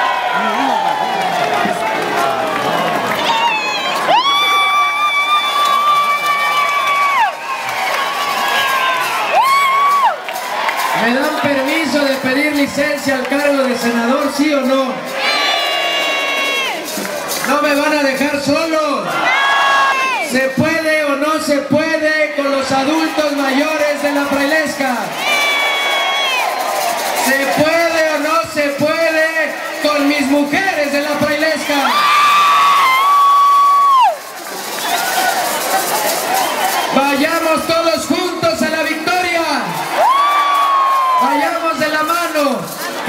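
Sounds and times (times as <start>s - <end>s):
crowd cheering and shouting: 0.0s - 43.0s.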